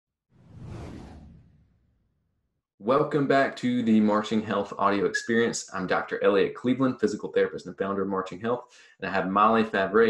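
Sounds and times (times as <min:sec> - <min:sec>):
whoosh sound effect: 0:00.4 - 0:02.0.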